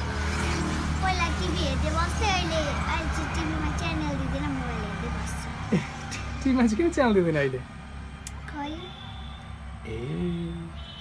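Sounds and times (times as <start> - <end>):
girl speaking: 0.9 - 5.5, 8.3 - 9.0.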